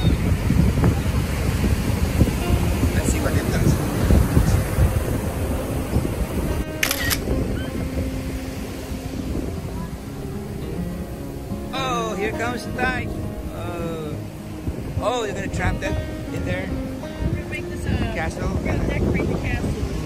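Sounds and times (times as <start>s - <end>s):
beach surf: 0.0s - 20.0s
soft music with held notes: 0.0s - 20.0s
wind rumbling on microphone: 0.0s - 20.0s
camera shutter sound effect: 6.8s - 7.2s.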